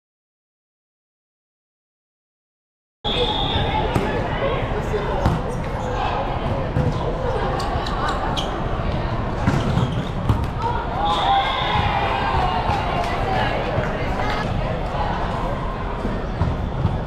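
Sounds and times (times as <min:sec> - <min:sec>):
referee's whistle: 0:03.0 - 0:04.0
babble of voices: 0:03.2 - 0:17.0.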